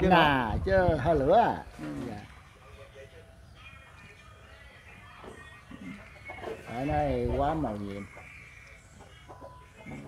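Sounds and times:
faint chicken clucking: 3.6s - 6.8s, 7.6s - 10.0s.

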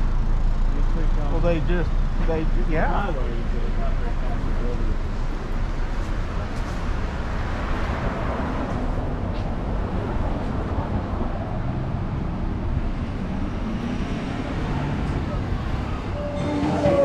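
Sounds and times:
cars driving past: 0.0s - 17.0s.

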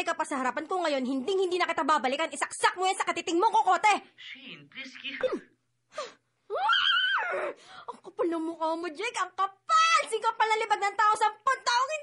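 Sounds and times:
woman's high-pitched cry: 6.5s - 7.6s.

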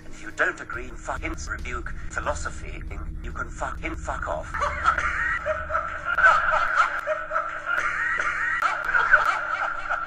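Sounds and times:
background music: 0.0s - 10.0s
people snickering and chuckling: 4.5s - 10.0s.

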